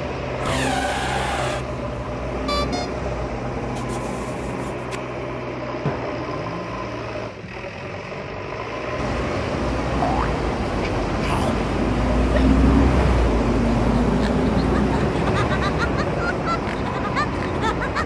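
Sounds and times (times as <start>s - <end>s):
truck engine rumbling: 0.0s - 18.0s.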